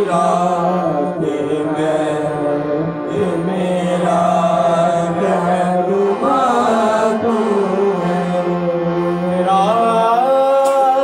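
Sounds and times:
harmonium holding low note: 0.0s - 11.0s
men singing a hymn: 0.0s - 11.0s.

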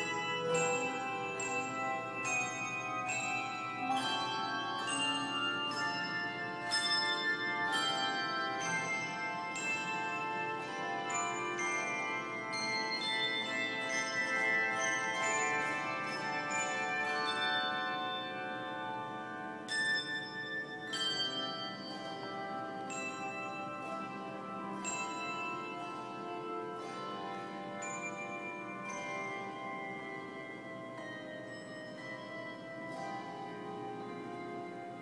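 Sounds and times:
handbell choir playing chords: 0.0s - 35.0s.

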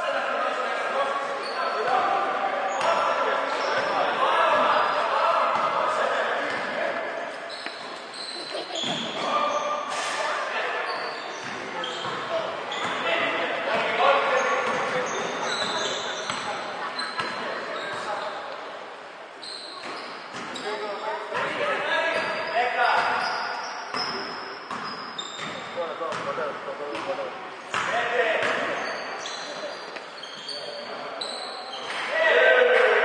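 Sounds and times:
basketball bouncing: 23.9s - 26.3s.

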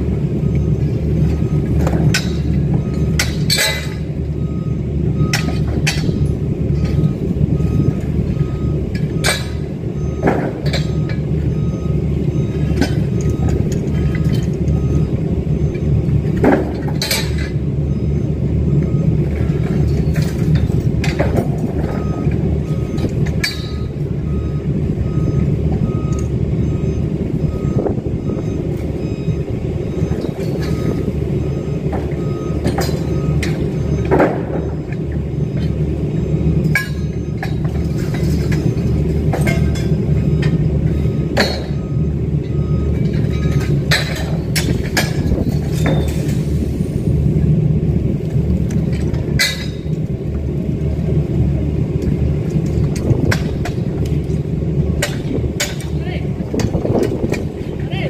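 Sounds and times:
reversing alarm beeping: 0.0s - 57.9s
diesel engine rumbling: 0.0s - 58.0s
scaffold tubes clanking: 1.2s - 4.4s, 5.2s - 7.2s, 8.0s - 11.6s, 19.3s - 24.2s, 36.5s - 47.0s, 48.0s - 50.9s, 52.0s - 57.9s.

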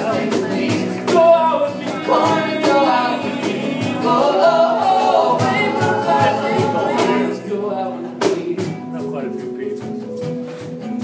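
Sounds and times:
steady beat: 0.0s - 7.4s
voices singing in harmony: 0.0s - 8.5s
guitar: 0.0s - 11.0s.

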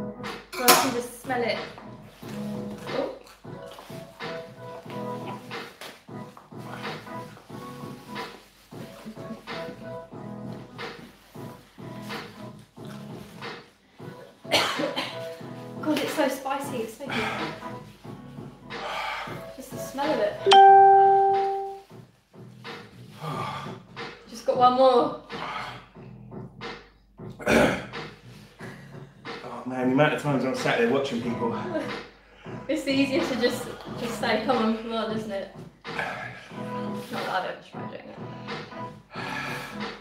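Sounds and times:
quiet background music: 0.0s - 40.0s.

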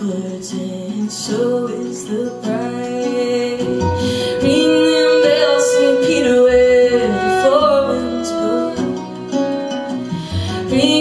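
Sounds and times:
acoustic guitar: 0.0s - 11.0s
woman singing: 0.0s - 11.0s.

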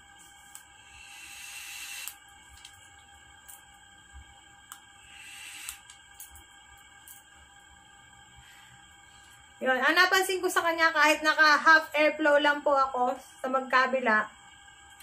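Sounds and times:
vape airflow hiss: 0.0s - 10.5s.

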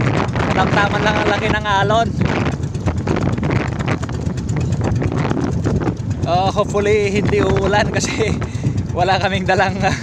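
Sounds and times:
boat engine drone: 0.0s - 10.0s
water rushing past hull: 0.0s - 10.0s
wind on microphone: 0.0s - 10.0s.

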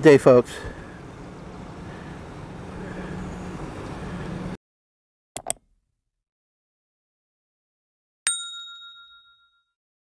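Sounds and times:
mouse-click sound effects: 5.4s - 5.6s
bright bell ding: 8.3s - 9.8s.

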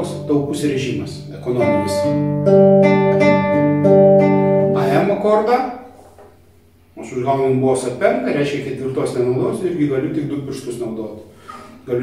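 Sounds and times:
classical guitar fingerpicked arpeggio: 1.4s - 5.0s.

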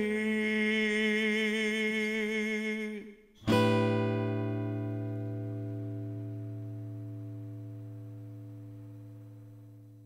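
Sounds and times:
acoustic guitar chord ringing: 3.4s - 10.0s.

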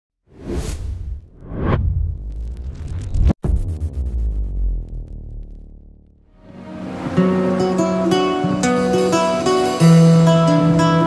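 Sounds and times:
whoosh sound effects: 0.3s - 5.6s
deep bass rumble: 0.6s - 6.4s.

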